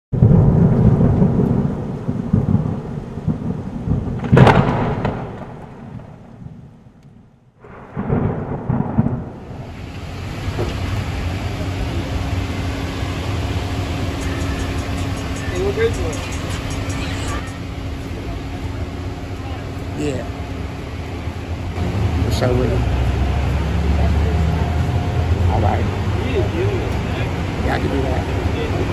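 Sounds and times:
thunder rumble and crack: 0:00.1 - 0:16.2, 0:17.6 - 0:28.9
low hum: 0:00.2 - 0:28.9.

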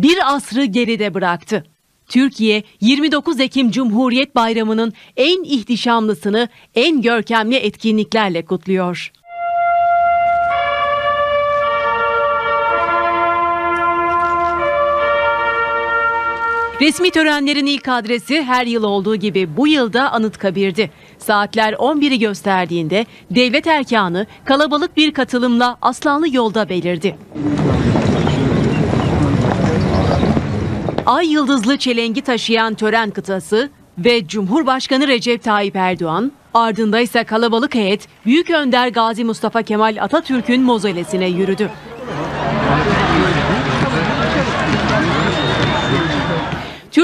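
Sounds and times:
sustained chords on wind instruments: 0:09.2 - 0:18.6
group footsteps on stone paving: 0:13.7 - 0:14.7, 0:27.5 - 0:31.1, 0:43.7 - 0:46.8
outdoor crowd din: 0:24.0 - 0:33.5, 0:38.8 - 0:47.0.

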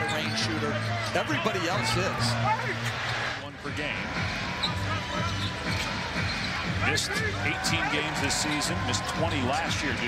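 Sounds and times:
arena music: 0:00.0 - 0:10.0.

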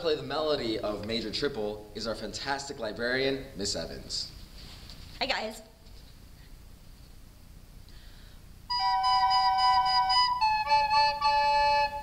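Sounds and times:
recorders holding steady notes: 0:08.7 - 0:12.0.

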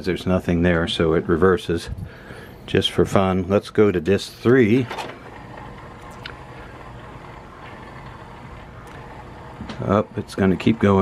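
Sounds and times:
disc changer motor whirring: 0:02.4 - 0:11.0.

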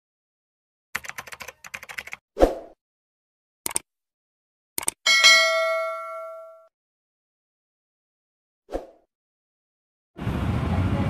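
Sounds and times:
bell ding: 0:05.1 - 0:06.7.

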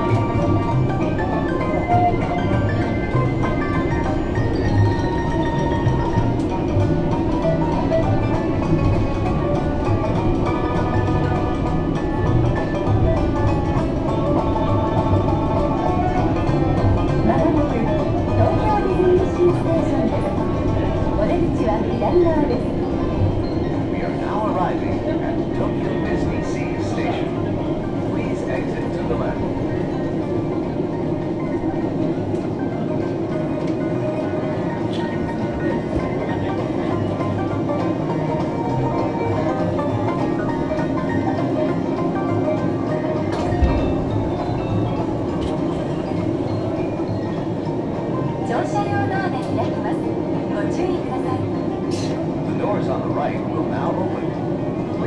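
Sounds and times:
background music: 0:00.0 - 0:55.0
monorail running rumble: 0:00.0 - 0:55.0.

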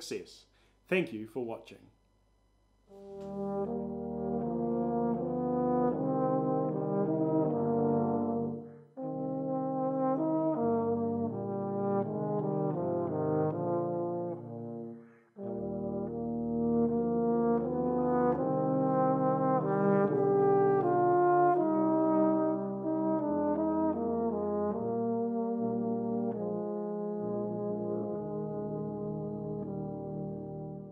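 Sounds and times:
brass ensemble playing chords: 0:02.9 - 0:30.9.

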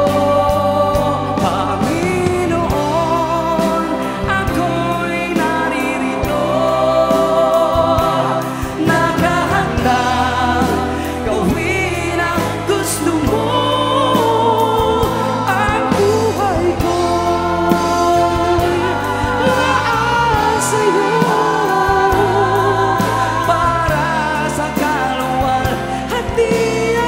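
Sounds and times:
band playing: 0:00.0 - 0:27.0
man singing into a microphone: 0:00.0 - 0:27.0.

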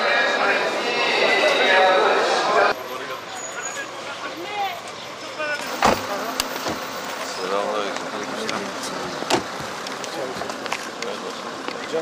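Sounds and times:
cars pulling up: 0:00.0 - 0:12.0
car door click: 0:05.8 - 0:06.9.

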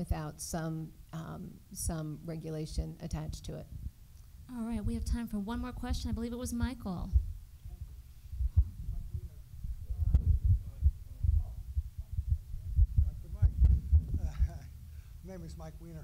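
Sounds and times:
microphone handling thumps: 0:02.8 - 0:14.8.

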